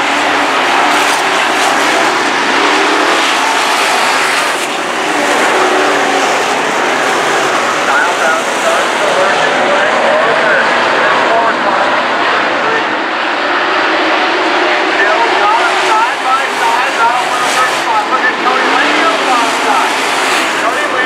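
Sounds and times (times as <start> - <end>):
race car engines: 0.0 - 21.0.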